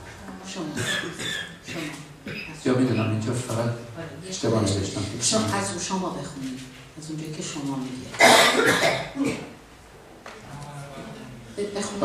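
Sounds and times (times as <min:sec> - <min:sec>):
man coughing into microphone: 0:00.8 - 0:02.6, 0:08.2 - 0:09.6.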